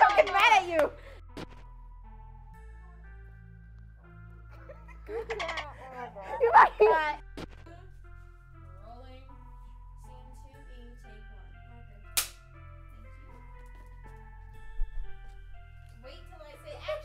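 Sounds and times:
sustained background music: 0.0 - 17.0
clapperboard snap: 12.2 - 12.4.

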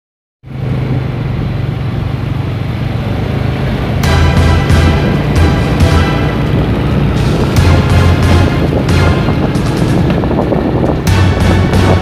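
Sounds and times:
road and wind noise: 0.4 - 12.0
vehicle engine running: 0.4 - 12.0.

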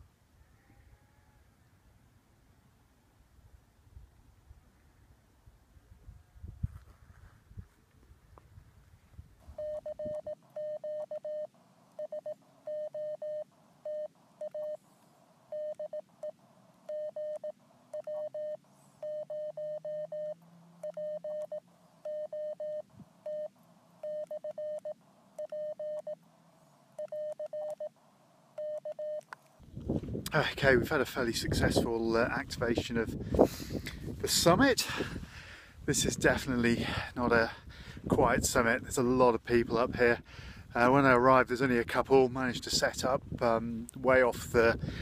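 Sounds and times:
morse code beeps: 9.6 - 14.8, 15.5 - 16.3, 16.9 - 26.2, 27.0 - 27.9, 28.6 - 29.2.

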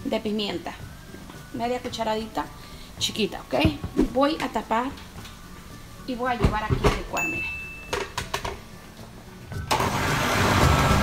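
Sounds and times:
blender motor running: 9.7 - 11.0.

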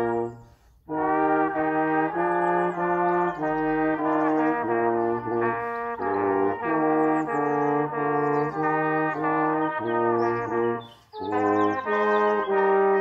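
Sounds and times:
trumpets and trombone playing chords: 0.0 - 13.0.

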